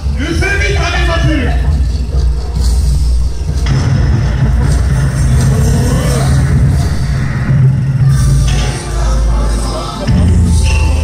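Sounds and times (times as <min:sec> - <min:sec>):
dance music over loudspeakers: 0:00.0 - 0:11.0.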